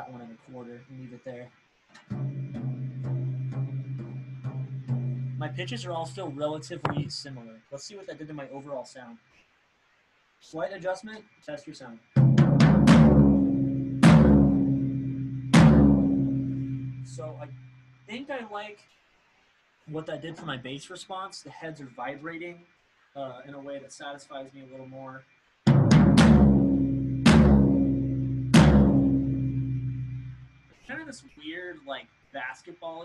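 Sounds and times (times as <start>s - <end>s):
floor tom drum hits: 2.1s - 7.2s, 12.2s - 17.1s, 25.7s - 30.4s.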